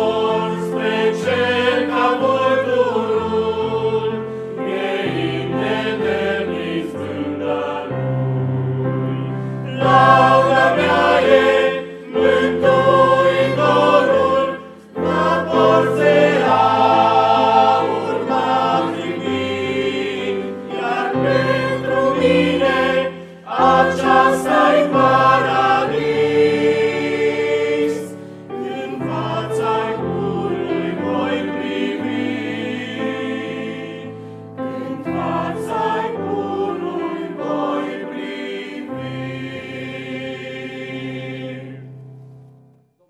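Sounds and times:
choir singing in parts: 0:00.0 - 0:42.2.

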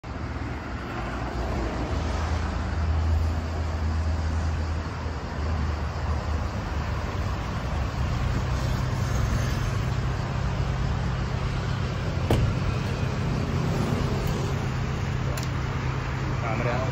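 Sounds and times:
van engine humming: 0:00.0 - 0:16.9.

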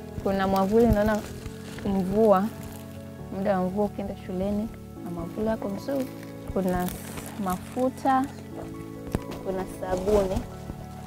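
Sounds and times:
soft background music: 0:00.0 - 0:11.0
woman speaking: 0:00.2 - 0:02.6, 0:03.3 - 0:08.4, 0:09.4 - 0:10.5.

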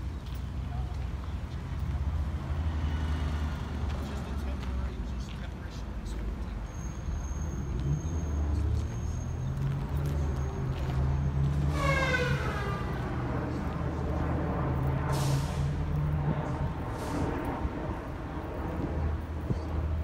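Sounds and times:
city traffic rumble: 0:00.0 - 0:20.0
short hiss of air: 0:15.1 - 0:15.7.

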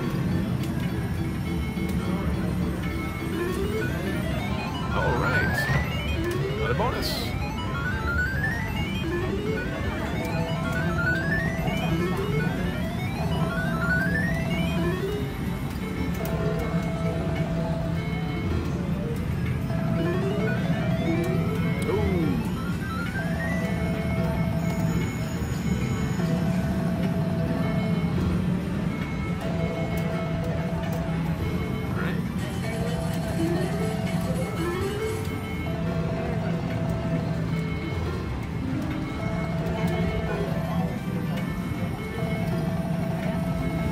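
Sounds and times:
looping electronic game tune: 0:00.0 - 0:43.9.

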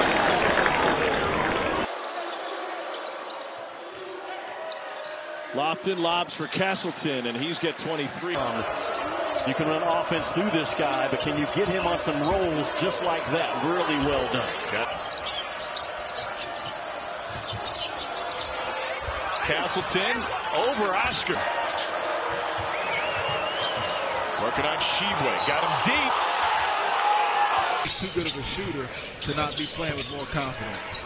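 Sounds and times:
arena crowd noise: 0:00.0 - 0:31.0.

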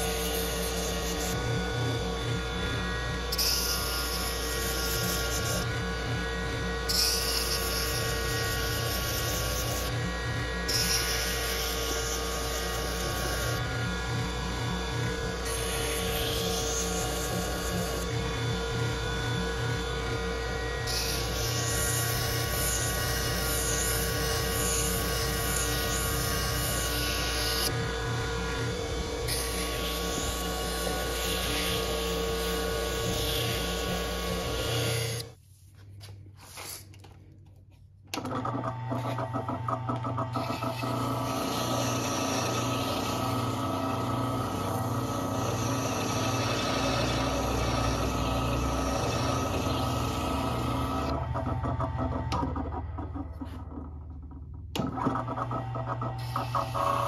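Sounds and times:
sharpening machine motor hum: 0:00.0 - 0:35.3, 0:38.2 - 0:57.0.

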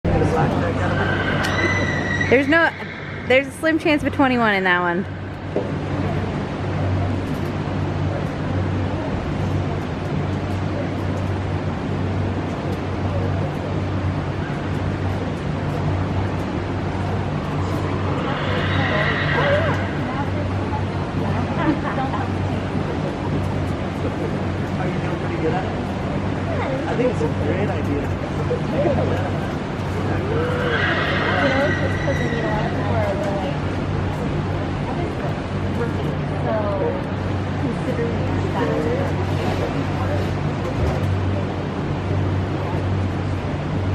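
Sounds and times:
ventilation fans humming: 0:00.0 - 0:43.9
horse whinnying: 0:00.7 - 0:03.4, 0:18.1 - 0:20.0, 0:30.2 - 0:32.6.

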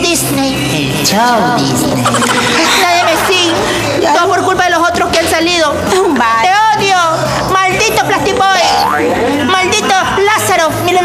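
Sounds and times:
wordless vocal sounds: 0:00.6 - 0:05.4
sound rising in pitch: 0:02.0 - 0:05.0
low hum: 0:02.0 - 0:05.2.

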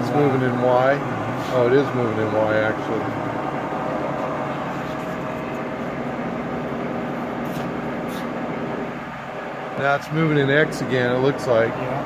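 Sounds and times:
milling machine motors humming: 0:00.0 - 0:12.0.

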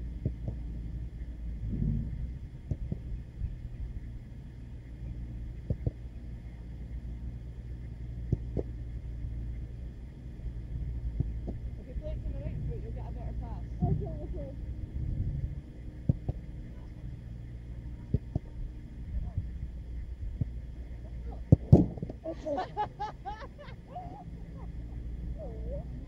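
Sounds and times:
low rumble: 0:00.0 - 0:26.0
football being kicked: 0:16.0 - 0:16.4, 0:18.1 - 0:18.6, 0:21.4 - 0:22.2.

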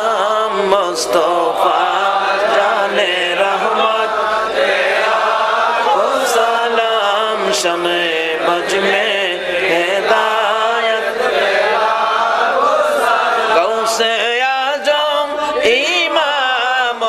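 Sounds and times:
crowd of men chanting: 0:00.0 - 0:17.0.

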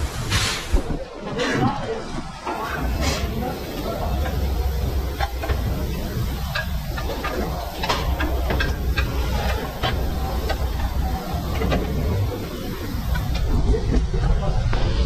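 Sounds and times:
low workshop rumble: 0:01.9 - 0:15.0.

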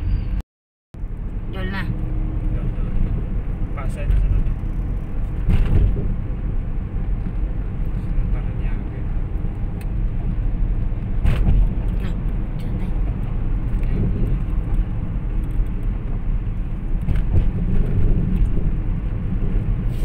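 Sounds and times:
car engine rumble: 0:01.0 - 0:20.0
tyre road noise: 0:01.0 - 0:20.0.

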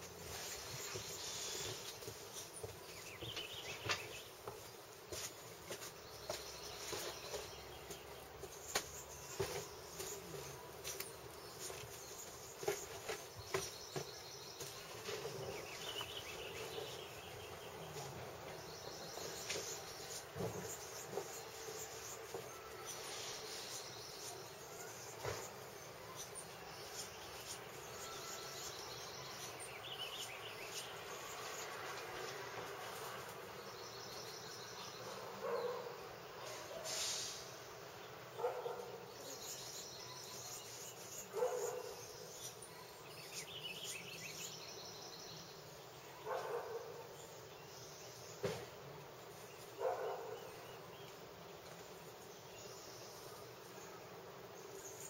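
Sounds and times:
steady hiss: 0:00.0 - 0:35.3, 0:36.0 - 0:38.4
insects buzzing: 0:00.0 - 0:55.0.

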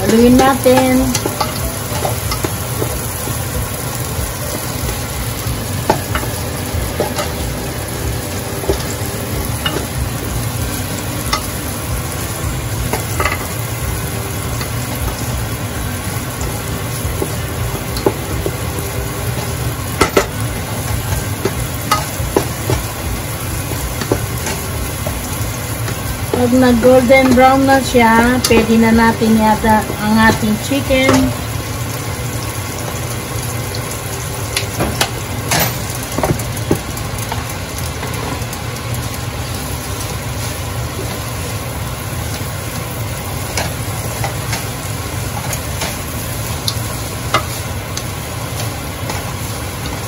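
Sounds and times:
garlic and onion sizzling in oil: 0:00.0 - 0:50.0
spatula tapping pot: 0:21.0 - 0:31.3.

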